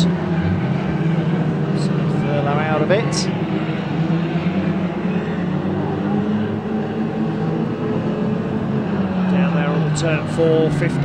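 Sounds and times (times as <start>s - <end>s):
racing car engines humming: 0.0s - 11.0s.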